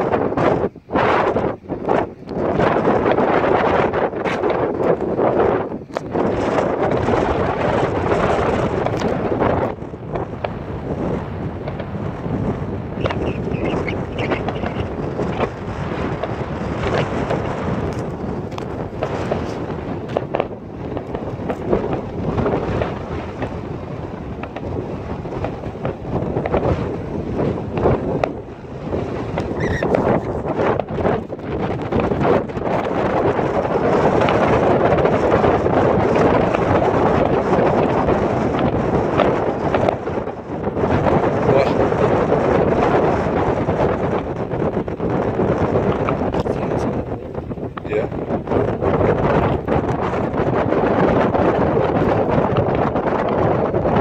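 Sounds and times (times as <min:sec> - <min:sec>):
distant fireworks bangs: 0:00.0 - 0:51.8
wind buffeting microphone: 0:00.0 - 0:54.0.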